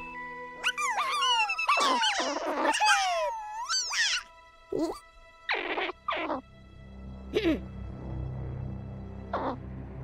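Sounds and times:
background music: 0:00.0 - 0:10.0
cartoon creatures squeaky chattering: 0:00.7 - 0:04.2.

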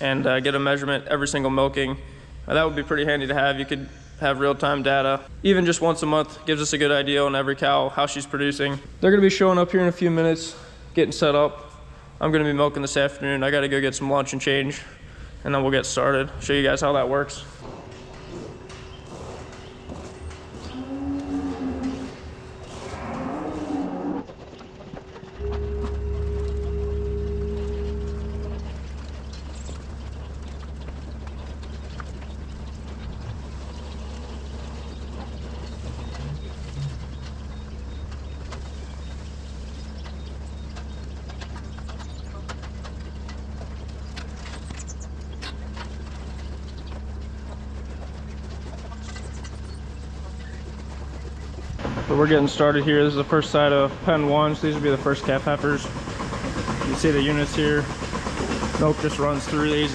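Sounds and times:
low mechanical hum: 0:00.0 - 0:59.9
cows mooing: 0:17.6 - 0:24.5, 0:25.4 - 0:29.1.

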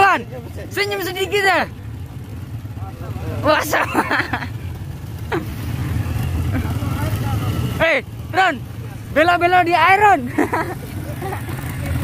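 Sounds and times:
small motorcycle engines droning: 0:00.0 - 0:12.0.

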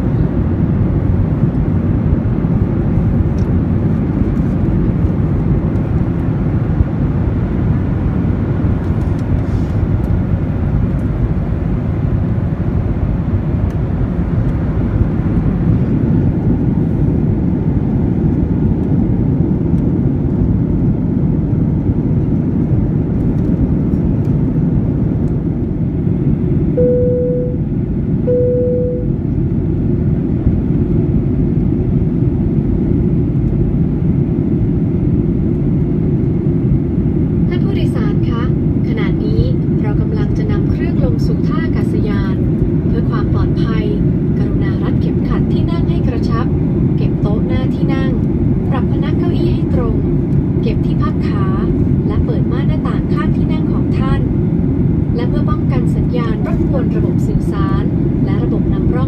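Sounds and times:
jet cabin engine and airflow noise: 0:00.0 - 0:59.0.

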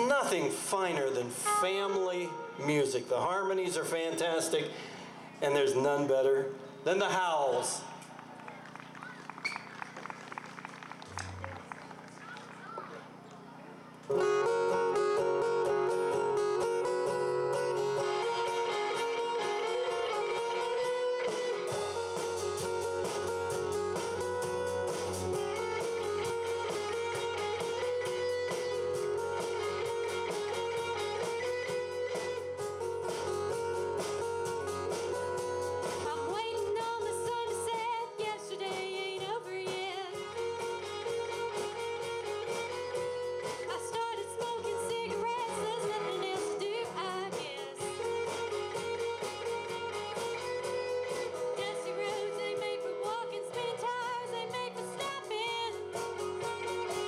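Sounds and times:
bass and drums: 0:00.0 - 0:01.9, 0:14.0 - 0:57.0
guitars playing melody: 0:00.0 - 0:07.8, 0:12.7 - 0:57.0.

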